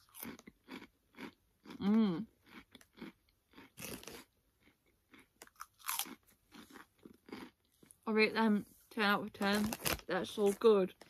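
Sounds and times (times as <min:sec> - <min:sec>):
person chewing crunchy snacks: 0:00.0 - 0:08.0.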